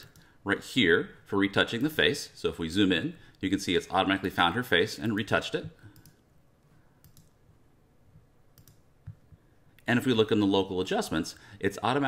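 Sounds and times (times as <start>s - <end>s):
computer mouse clicks: 5.9s - 6.2s, 7.0s - 7.4s, 8.6s - 9.4s.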